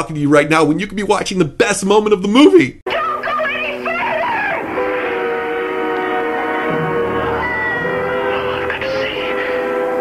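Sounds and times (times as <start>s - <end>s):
woman speaking: 2.9s - 4.7s, 7.2s - 9.8s
sustained orchestral chord: 3.6s - 10.0s.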